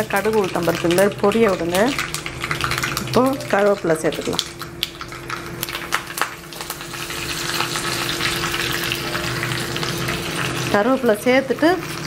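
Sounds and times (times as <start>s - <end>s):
leaves sizzling in hot oil: 0.0s - 12.0s.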